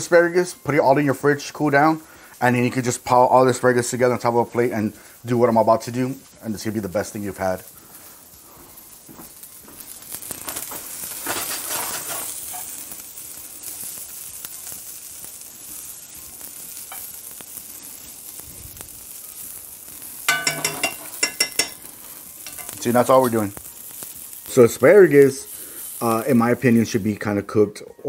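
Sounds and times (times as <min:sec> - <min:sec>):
food sizzling in skillet: 0:00.0 - 0:28.0
metal spoon stirring in pan: 0:10.1 - 0:14.3, 0:15.4 - 0:18.1, 0:19.4 - 0:24.6.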